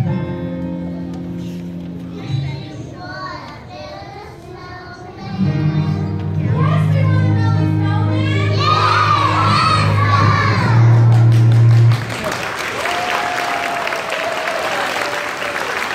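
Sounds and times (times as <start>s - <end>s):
children's choir singing: 2.3s - 6.2s, 8.0s - 11.1s
audience applauding and cheering: 9.5s - 15.9s.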